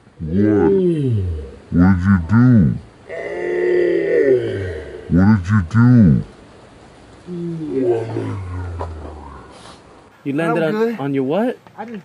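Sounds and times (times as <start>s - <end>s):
man groaning in pain: 0.2s - 2.3s, 3.1s - 5.4s, 7.3s - 9.5s.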